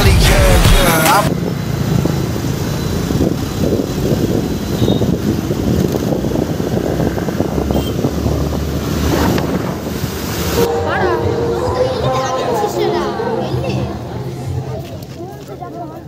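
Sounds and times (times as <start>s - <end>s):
bus engine rumble: 0.0s - 16.0s
wind buffeting microphone: 1.8s - 10.4s.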